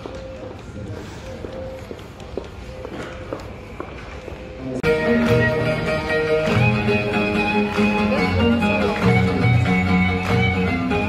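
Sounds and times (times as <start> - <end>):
footsteps on pavement: 0.0 - 4.5.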